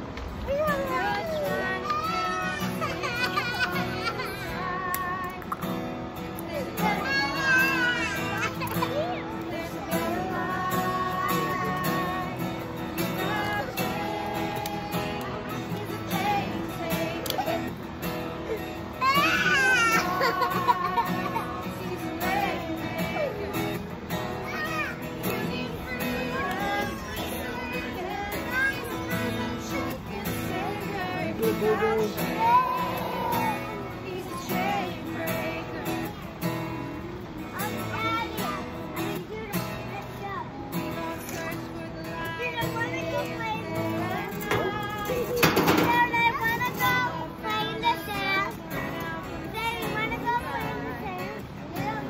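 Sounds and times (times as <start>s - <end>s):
acoustic guitar strumming: 0.0s - 52.0s
voices singing worship song: 0.0s - 52.0s
young child crying: 0.4s - 5.7s, 6.6s - 9.8s, 16.6s - 23.4s, 24.3s - 29.8s, 31.8s - 35.1s.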